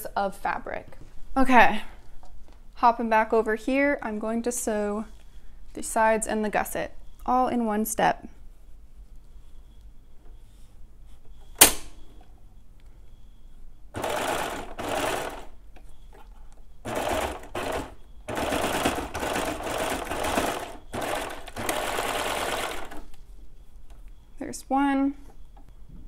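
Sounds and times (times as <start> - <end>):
sharp click: 11.6 - 12.0
serger stitching fabric: 14.0 - 15.6, 16.9 - 23.0.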